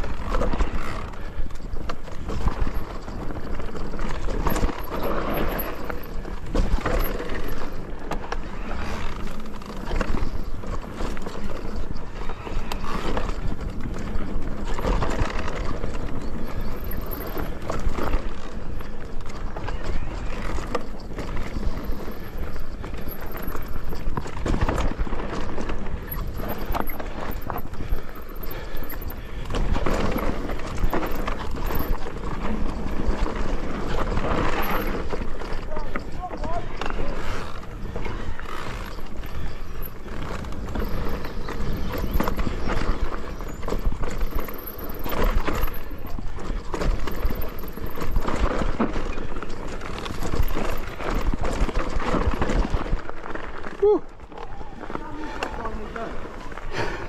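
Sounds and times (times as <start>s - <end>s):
bike rattling and knocking: 0.0s - 57.0s
bike tyres rolling over dirt: 0.0s - 57.0s.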